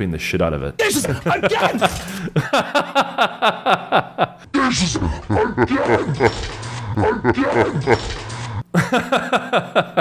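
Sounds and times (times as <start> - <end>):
man yelling short cries: 0.8 - 2.0.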